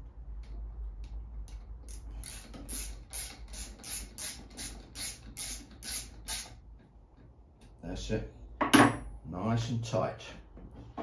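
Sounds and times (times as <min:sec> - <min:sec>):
ratchet wrench clicking: 0:01.5 - 0:06.6.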